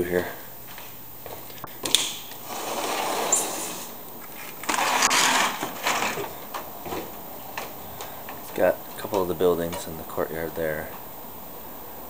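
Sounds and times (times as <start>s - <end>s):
sliding glass door rattling: 4.7s - 6.3s.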